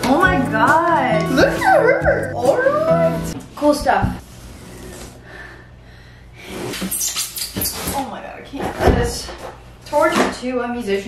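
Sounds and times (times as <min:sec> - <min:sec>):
packing material squeaking and scraping: 0:06.5 - 0:08.1.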